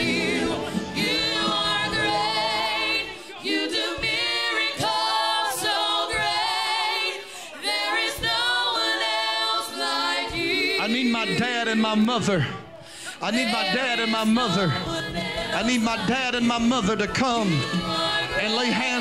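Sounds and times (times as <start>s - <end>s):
keyboard accompaniment: 0.0s - 3.3s
singers singing gospel song: 0.0s - 19.0s.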